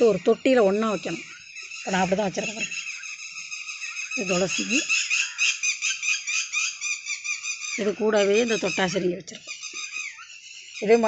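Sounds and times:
bird chirping rapidly: 0.0 - 11.0.

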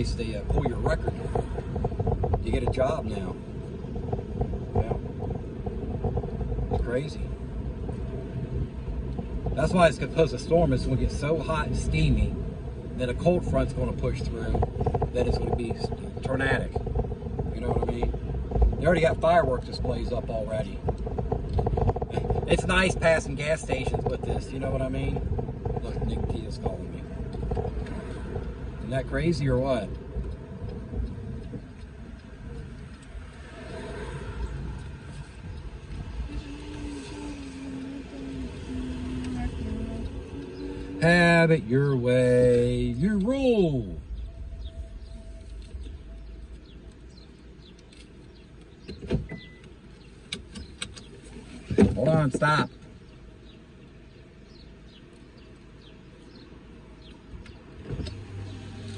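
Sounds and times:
car cabin road rumble: 0.0 - 58.9.

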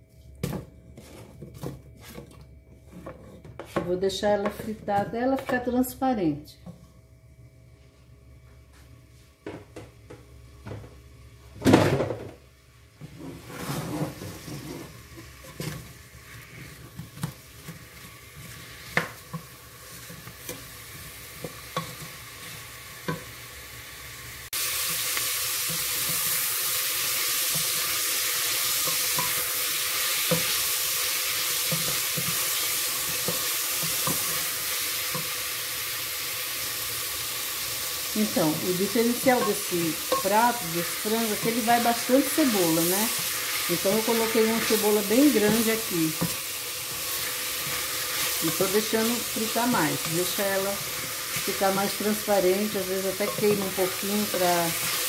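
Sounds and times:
onion frying in oil: 12.4 - 55.0.

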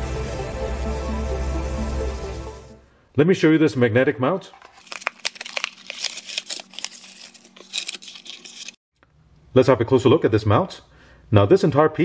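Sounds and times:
cardboard box being opened: 4.5 - 8.7
packaging rustling and crinkling: 4.5 - 8.8.

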